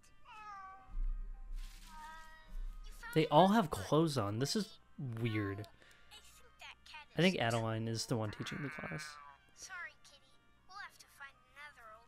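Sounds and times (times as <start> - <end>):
cartoon cat meowing: 0.3 - 0.9.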